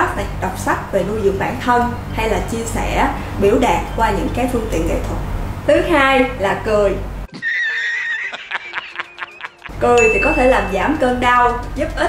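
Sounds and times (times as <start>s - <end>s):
man laughing hard: 7.3s - 9.7s.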